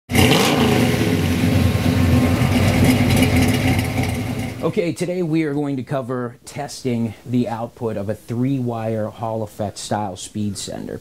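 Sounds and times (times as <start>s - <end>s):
vehicle engine revving: 0.1s - 4.6s.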